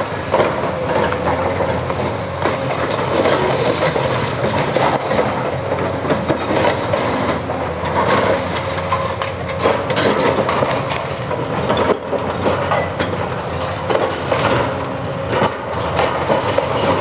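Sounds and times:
excavator diesel engine running: 0.0 - 17.0.

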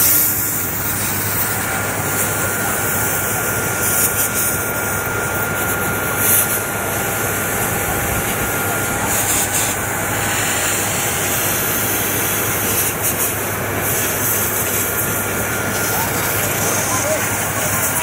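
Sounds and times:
compressed air hissing: 0.0 - 18.0.

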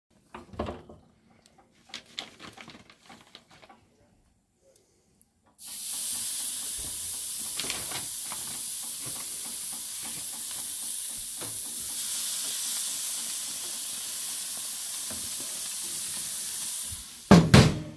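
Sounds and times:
faint clicks and rattles: 0.2 - 12.0
steaks sizzling on grill: 5.6 - 17.3.

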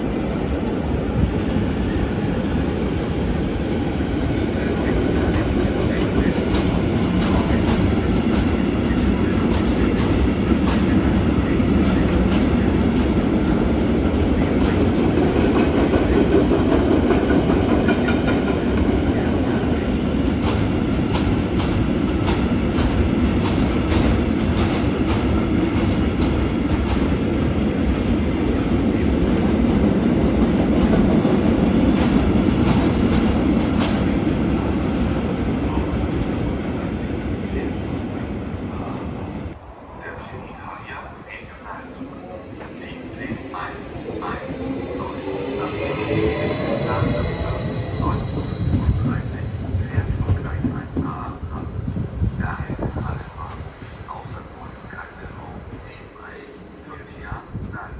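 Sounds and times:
freight train rumbling past: 0.0 - 57.8.

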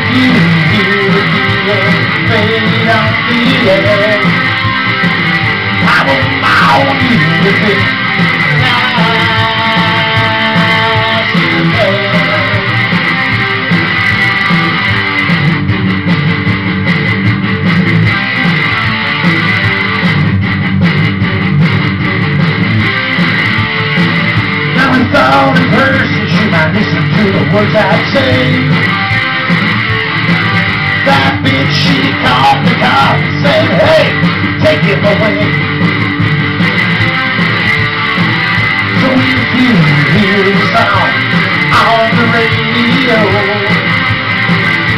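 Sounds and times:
guitar playing: 0.0 - 44.9.

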